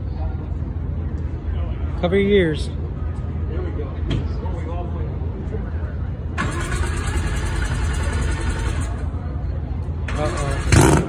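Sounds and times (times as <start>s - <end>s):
engine starter cranking: 6.4s - 8.9s.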